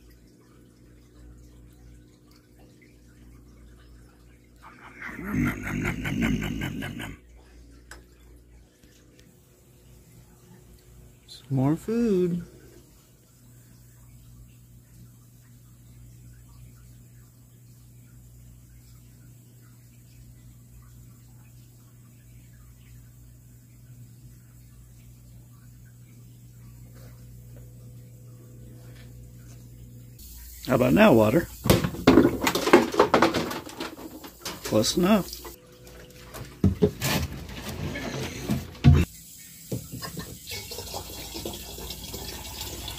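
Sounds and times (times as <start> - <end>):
light water sound: 0.0 - 5.3, 7.2 - 32.8
faint equipment hum: 0.0 - 42.9
water splashing into plastic bin: 31.3 - 37.8.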